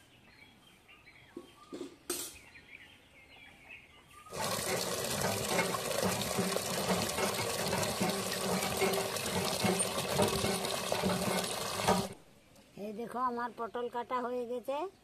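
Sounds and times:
water gushing into metal bucket: 4.3s - 12.2s.

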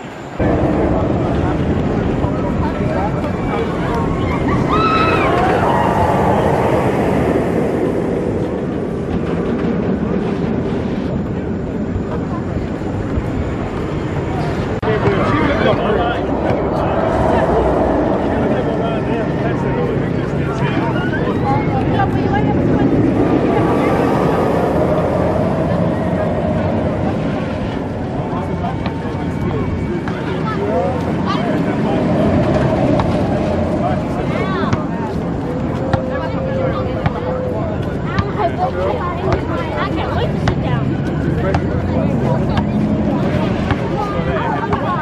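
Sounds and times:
roller coaster train rumbling: 0.0s - 45.0s.

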